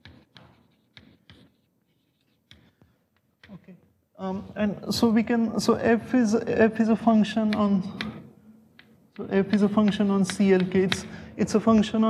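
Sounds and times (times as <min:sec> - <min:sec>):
chalk tapping and scratching: 0:00.0 - 0:03.6, 0:08.8 - 0:11.1.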